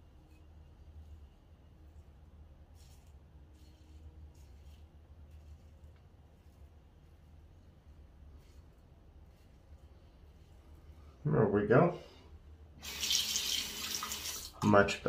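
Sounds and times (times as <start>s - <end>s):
low steady hum: 0.0s - 15.0s.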